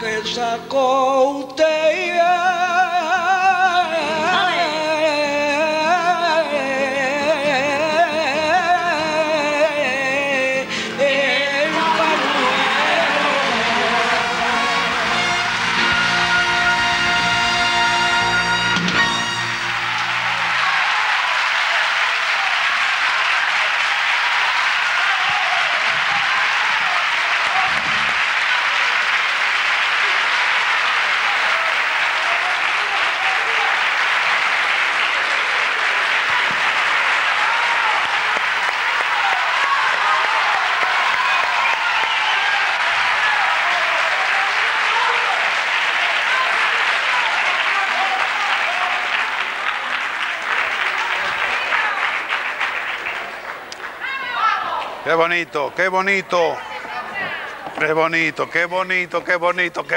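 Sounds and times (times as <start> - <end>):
audience applauding: 3.4 - 59.9.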